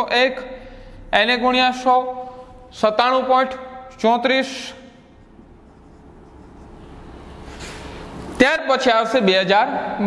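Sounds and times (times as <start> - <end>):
marker scratching on whiteboard: 5.0 - 8.4.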